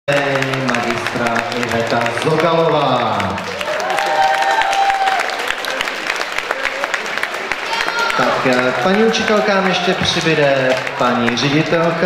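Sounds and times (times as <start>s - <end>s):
audience applauding: 0.1s - 12.0s.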